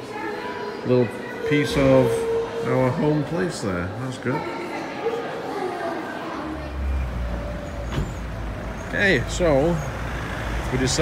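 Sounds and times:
road traffic rumble: 6.4s - 11.0s.

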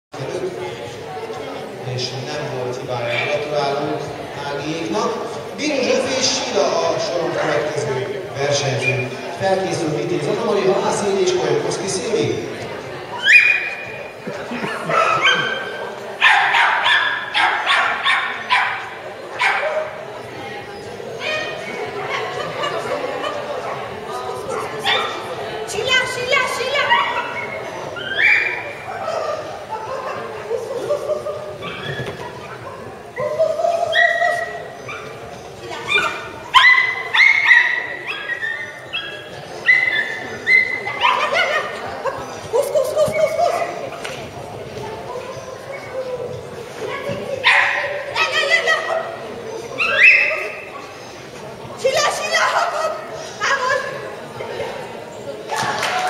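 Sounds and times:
small dog yipping: 13.2s - 13.8s, 26.9s - 28.6s, 31.6s - 35.1s, 35.8s - 41.6s, 49.8s - 50.7s
small dog barking: 16.2s - 19.9s.

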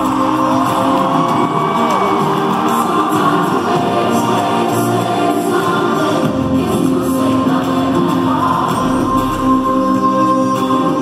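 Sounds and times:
person singing long notes: 0.0s - 11.0s.

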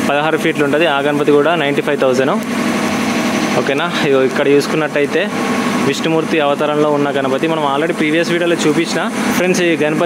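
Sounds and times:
man speaking: 0.0s - 2.4s, 3.5s - 10.0s
machine hum: 0.0s - 10.0s.

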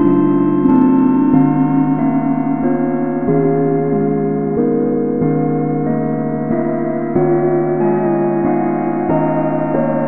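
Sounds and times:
ambient keyboard music: 0.0s - 10.0s.

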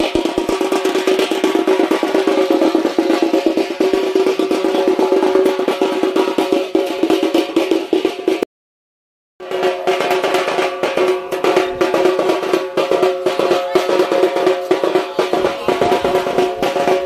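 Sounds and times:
fast drum beats: 0.0s - 8.5s, 9.4s - 17.0s.

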